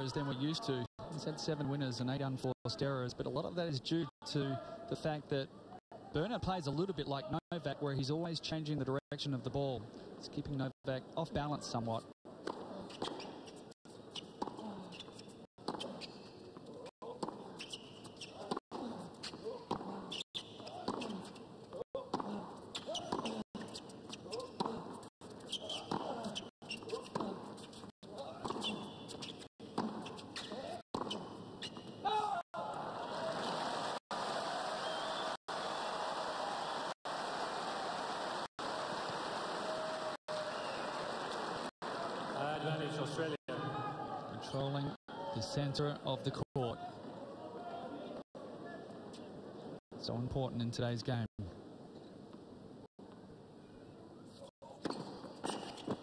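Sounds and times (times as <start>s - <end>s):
tennis ball strikes and bounces: 12.4s - 32.0s, 54.8s - 56.0s
crowd applause: 32.8s - 43.2s.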